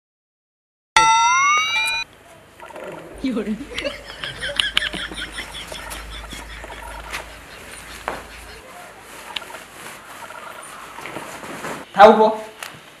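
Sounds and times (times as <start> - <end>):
low hum: 2.6 - 10.9
birds chirping: 2.6 - 11.4.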